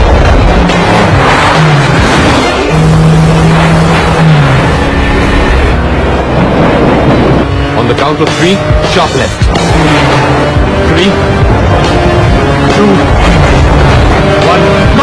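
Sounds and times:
car engines racing: 0.0s - 15.0s
film score music: 0.0s - 15.0s.

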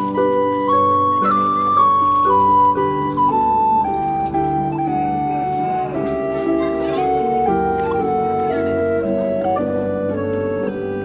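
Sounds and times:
melody of held notes: 0.0s - 11.0s
faint voices: 6.1s - 9.5s.

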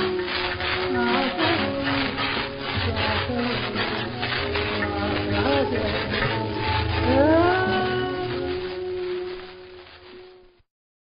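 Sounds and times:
old record music with gliding tones: 0.0s - 10.6s
record surface crackle: 0.0s - 10.6s.

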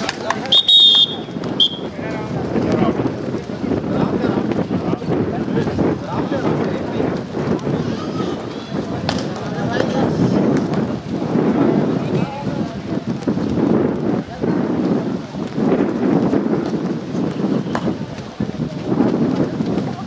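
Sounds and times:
spectators shouting and cheering: 0.0s - 3.0s.

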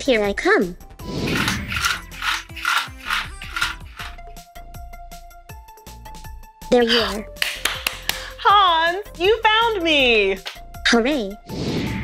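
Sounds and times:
background music: 0.0s - 12.0s
robot joint motors whirring: 1.1s - 4.2s.

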